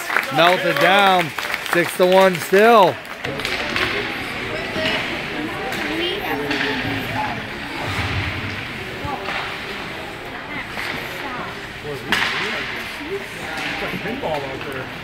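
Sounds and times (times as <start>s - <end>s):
hockey game noise: 0.0s - 15.0s
indistinct voices: 2.8s - 14.2s.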